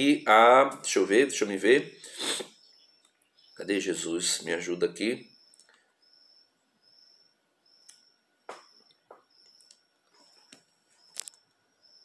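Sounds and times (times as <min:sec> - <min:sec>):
faint high chirp: 0:01.7 - 0:03.8, 0:05.1 - 0:12.0.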